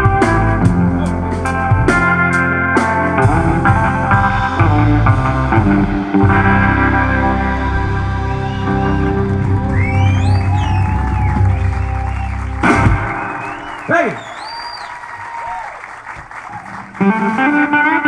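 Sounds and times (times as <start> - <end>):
live rock band playing: 0.0 - 14.8, 16.7 - 18.0
audience whistles: 7.8 - 16.8
applause and cheering: 7.8 - 18.0.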